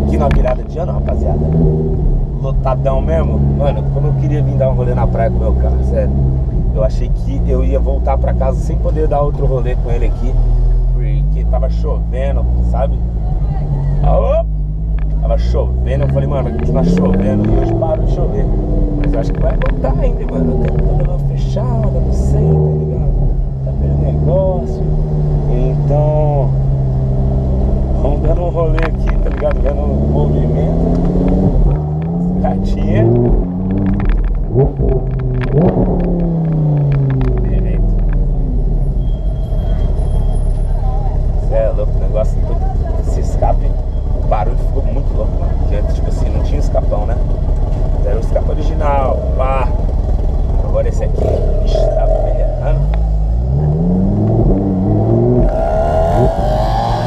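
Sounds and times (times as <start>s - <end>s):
low rumble: 0.0s - 42.0s
car engine revving: 0.0s - 57.0s.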